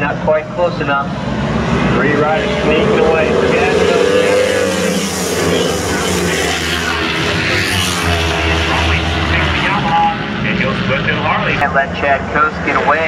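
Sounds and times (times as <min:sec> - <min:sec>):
racing motorcycles passing: 0:00.0 - 0:13.0.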